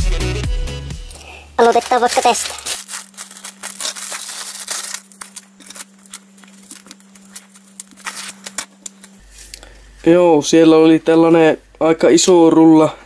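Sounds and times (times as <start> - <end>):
plastic bag crinkling: 1.1 - 9.2.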